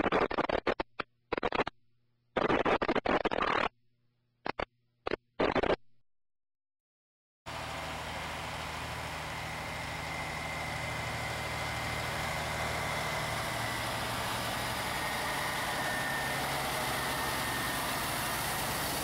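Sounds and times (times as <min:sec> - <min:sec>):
diesel truck engine running: 0:07.5 - 0:19.0.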